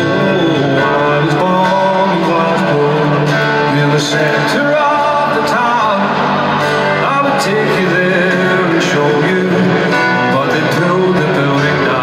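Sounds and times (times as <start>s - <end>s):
acoustic guitar strumming: 0.0s - 12.0s
person singing: 0.0s - 12.0s.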